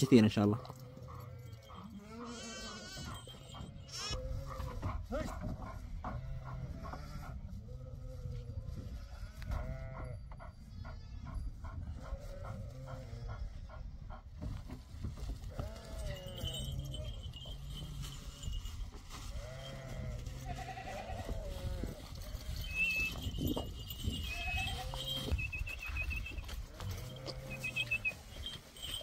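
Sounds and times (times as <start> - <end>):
sheep and lambs bleating: 0.8 - 4.8, 6.0 - 8.2, 8.9 - 10.2, 15.5 - 17.7, 19.3 - 29.0.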